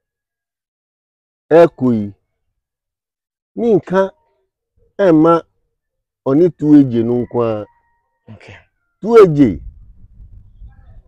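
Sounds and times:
man speaking: 1.5 - 2.2, 3.6 - 4.2, 5.0 - 5.5, 6.3 - 7.7, 8.3 - 9.6.

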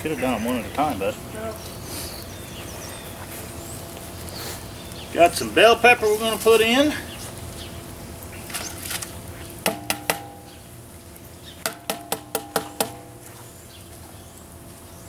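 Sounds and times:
bowl knocking on steel kettle rim: 9.7 - 10.4, 11.7 - 13.1.

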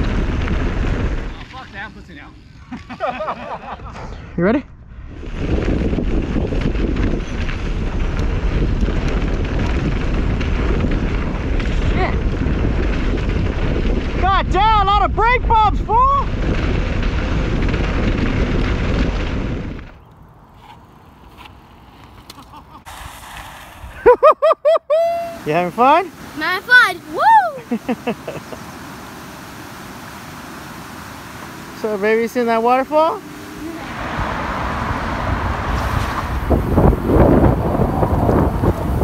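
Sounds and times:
wind buffeting microphone: 0.0 - 2.4, 3.6 - 20.5, 29.0 - 39.0
bike tyre rumble on trail: 0.0 - 4.2, 4.8 - 24.2, 25.3 - 39.0
person whooping: 24.1 - 25.4, 27.1 - 27.8.

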